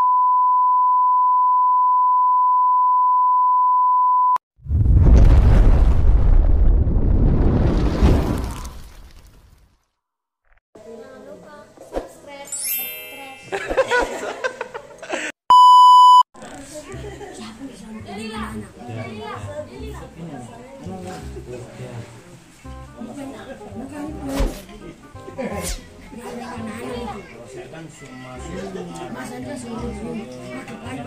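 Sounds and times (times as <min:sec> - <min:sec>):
high censor bleep: 0:00.0 - 0:04.4, 0:15.5 - 0:16.2
loud low rumbling boom: 0:04.6 - 0:08.5
steady electronic beep: 0:15.5 - 0:16.2.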